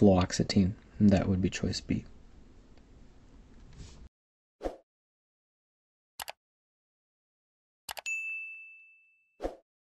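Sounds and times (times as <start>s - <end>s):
notification bell ding: 7.9s - 9.4s.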